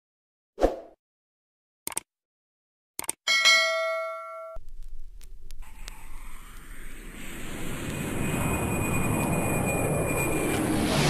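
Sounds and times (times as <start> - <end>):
quick clicks: 1.9 - 2.1, 3.0 - 3.2
bright bell ding: 3.3 - 4.6.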